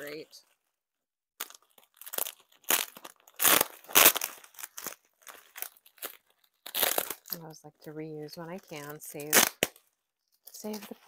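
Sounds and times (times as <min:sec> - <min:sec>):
bubble wrap crinkling: 0:01.4 - 0:11.0.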